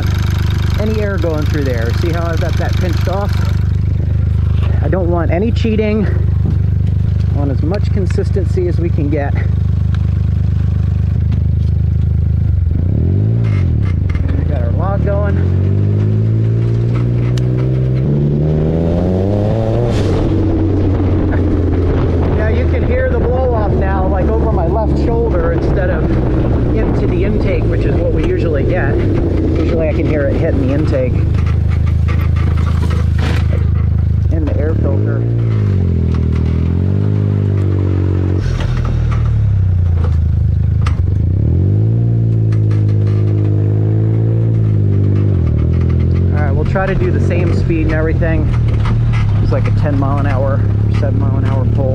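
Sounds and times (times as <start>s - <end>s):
buggy engine revving: 0.0s - 51.9s.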